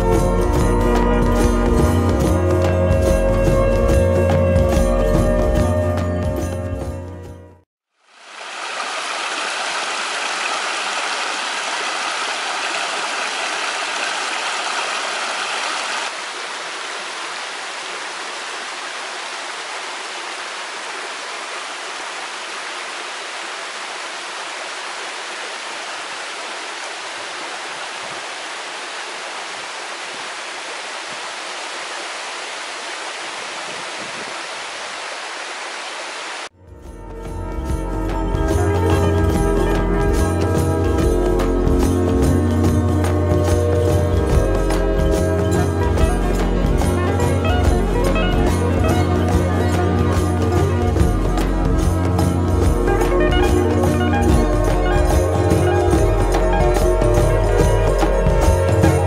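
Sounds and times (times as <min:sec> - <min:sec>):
stream running over stones: 0:07.9 - 0:36.6.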